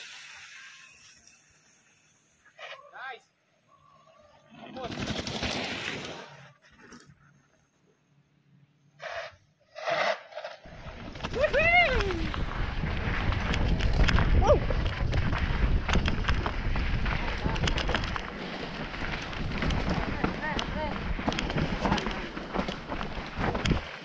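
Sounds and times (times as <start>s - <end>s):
wind buffeting microphone: 10.7s - 24.0s
bike rattling clicks and knocks: 13.1s - 24.0s.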